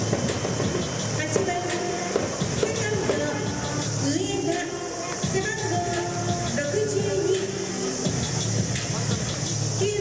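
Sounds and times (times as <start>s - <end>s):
music over loudspeakers: 0.0s - 10.0s.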